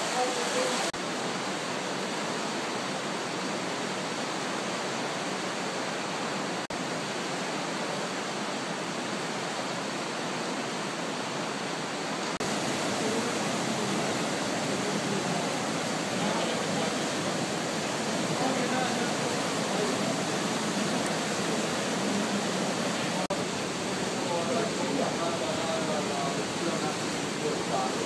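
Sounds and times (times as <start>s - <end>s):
flooded river rushing: 0.0s - 28.0s.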